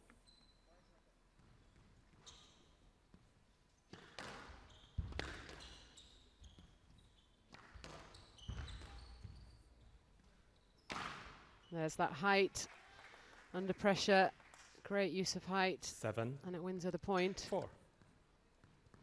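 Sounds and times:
shoe squeaks on court floor: 0:00.0 - 0:03.0, 0:03.8 - 0:11.8
squash ball hitting rackets and walls: 0:03.1 - 0:11.6, 0:17.2 - 0:19.0.

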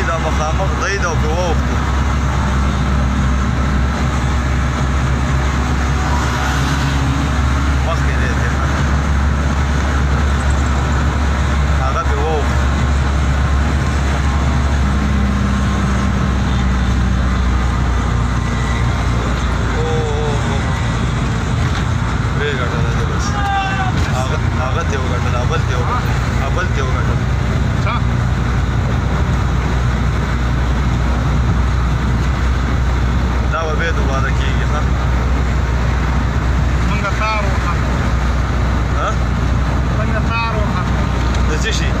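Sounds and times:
vehicle engine drone and road noise: 0:00.0 - 0:42.0.

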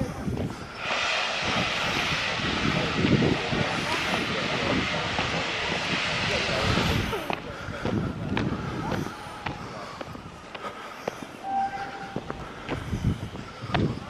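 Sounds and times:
steam locomotive hissing: 0:00.0 - 0:14.0.

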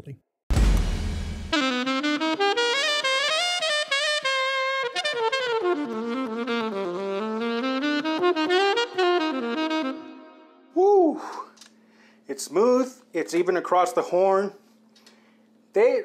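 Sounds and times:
solo saxophone melody: 0:01.5 - 0:10.8.

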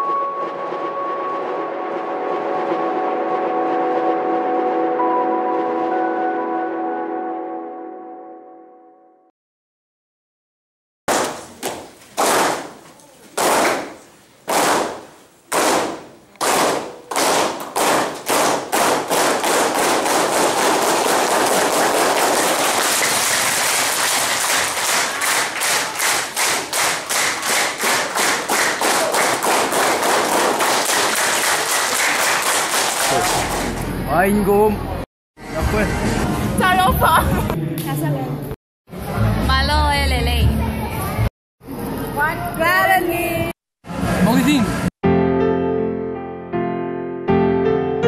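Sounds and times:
sustained synth chord: 0:00.0 - 0:09.3
people clapping in time: 0:11.1 - 0:34.0.

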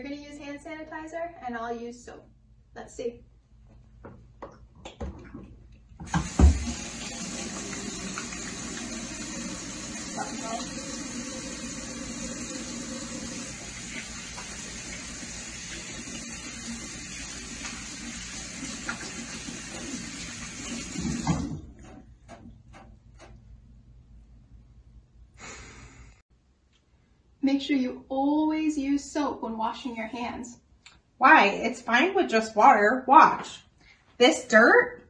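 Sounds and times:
faucet knock: 0:06.0 - 0:08.4, 0:18.8 - 0:22.9
faucet running into sink: 0:06.0 - 0:21.7.

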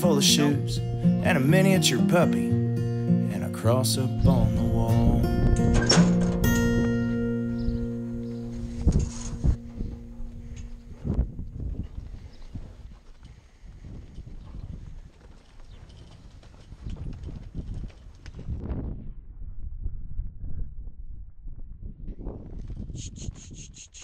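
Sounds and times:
song's last chord ringing: 0:00.0 - 0:08.8
hooves thudding on dirt: 0:05.3 - 0:19.1.

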